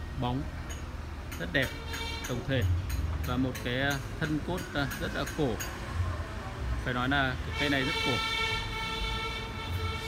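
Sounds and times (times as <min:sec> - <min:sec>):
steady horn-like tone: 0:07.5 - 0:10.0.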